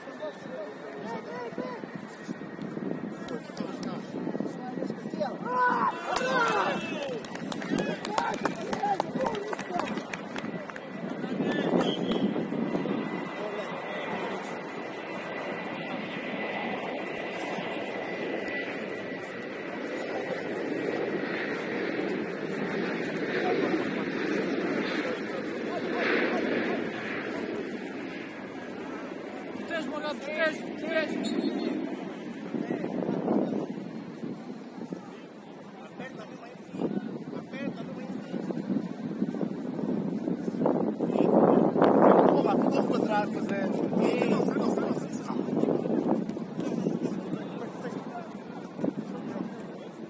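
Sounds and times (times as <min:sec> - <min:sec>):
players shouting: 0:05.4 - 0:10.0.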